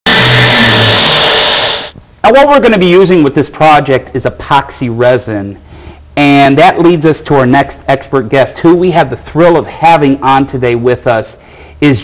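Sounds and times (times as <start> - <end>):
engine running loud: 0.0 - 2.0.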